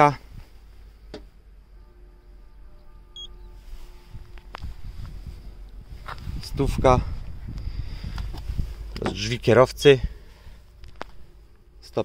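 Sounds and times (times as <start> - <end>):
faint steady hum: 0.0 - 12.0
handling rumble: 3.9 - 12.0.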